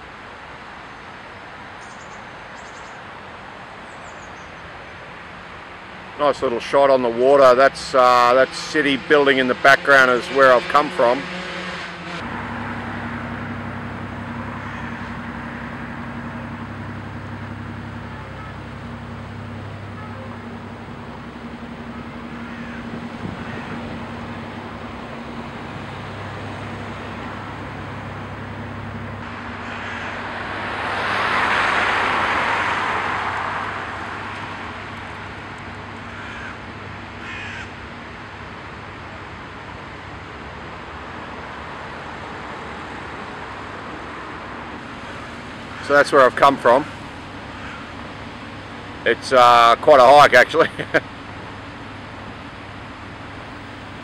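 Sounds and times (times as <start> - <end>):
passing engine: 5.6 - 54.0
steady low hum: 12.2 - 37.2
short calls: 13.0 - 30.3.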